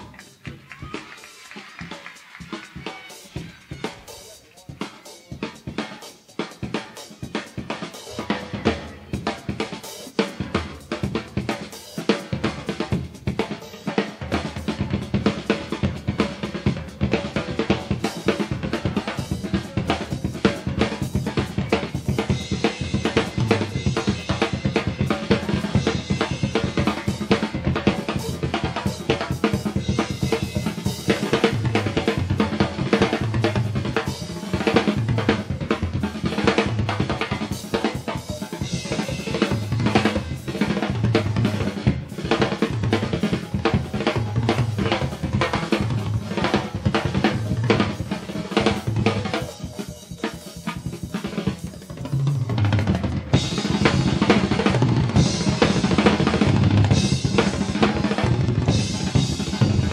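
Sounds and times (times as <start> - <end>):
drum kit solo: 0.0 - 59.9.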